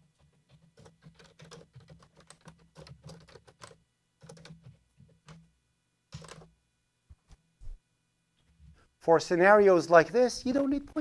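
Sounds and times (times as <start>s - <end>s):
typing on computer keyboard: 0.1s - 5.4s, 6.1s - 6.5s.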